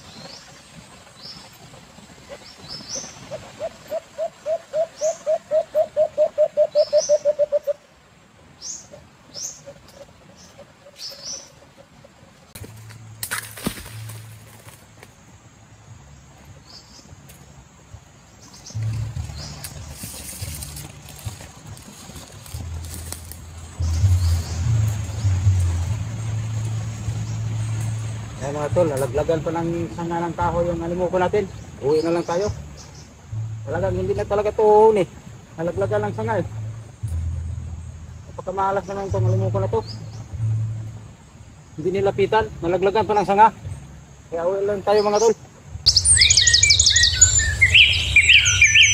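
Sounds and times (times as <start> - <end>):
birds chirping: 0.0 - 48.9
dove cooing: 3.3 - 7.8
steady low rumble: 12.3 - 44.4
faint high bird chirps: 45.9 - 48.9.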